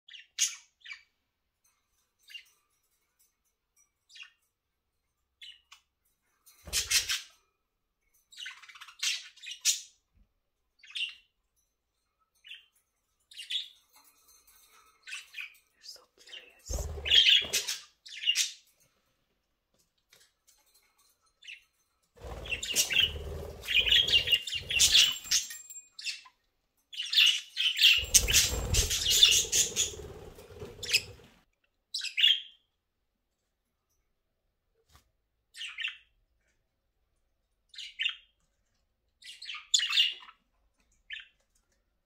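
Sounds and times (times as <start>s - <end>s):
budgerigars chirping and chattering: 6.7s - 7.4s, 15.0s - 18.7s, 22.2s - 26.3s, 27.0s - 31.3s, 39.2s - 40.4s.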